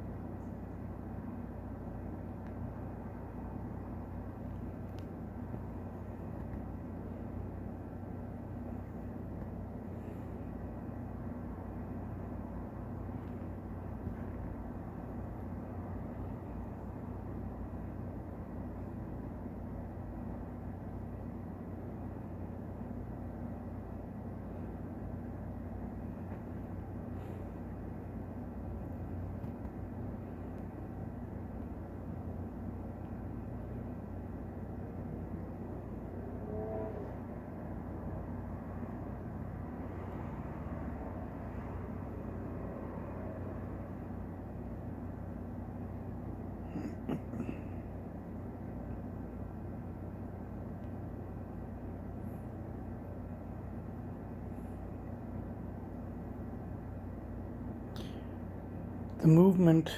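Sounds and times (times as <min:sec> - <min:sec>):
faint steady tones: 0:00.0 - 0:59.9
low mechanical hum: 0:00.0 - 0:59.9.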